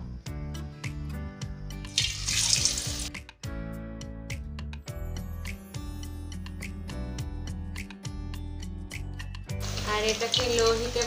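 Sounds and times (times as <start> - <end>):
background music: 0.0 - 11.0
potato slices sizzling in hot oil: 1.9 - 3.2, 9.5 - 11.0.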